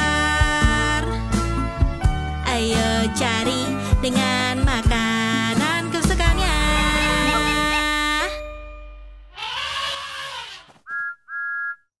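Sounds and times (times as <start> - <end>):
cartoon steam whistle toots: 10.9 - 11.9.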